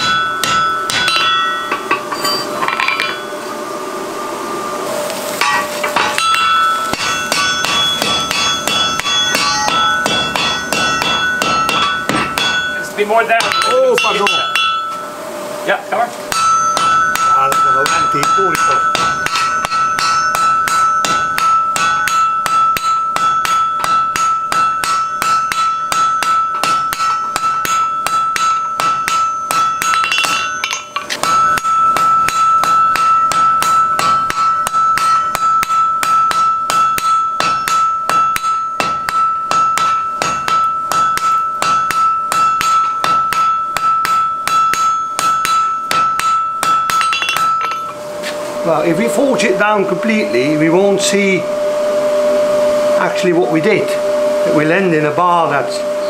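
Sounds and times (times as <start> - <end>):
anvil ringing: 0.0 - 3.8, 5.4 - 15.3, 16.3 - 51.6
hammer blows on hot steel: 5.4 - 15.3, 16.2 - 55.5.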